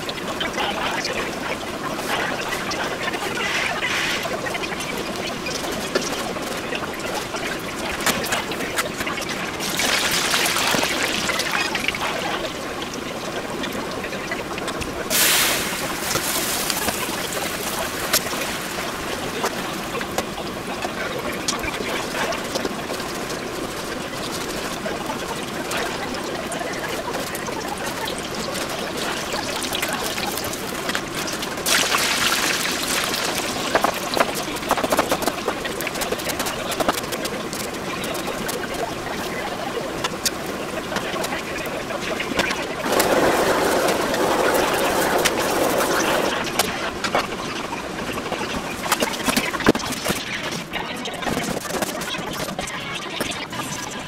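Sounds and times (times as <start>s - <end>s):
hot oil sizzling and bubbling: 0.0s - 50.4s
meat frying in a pan: 4.2s - 13.9s, 15.0s - 20.2s, 20.8s - 39.3s.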